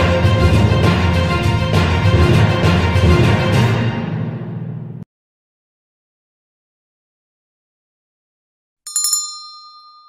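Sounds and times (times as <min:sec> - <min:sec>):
bell ding: 0:08.9 - 0:10.0.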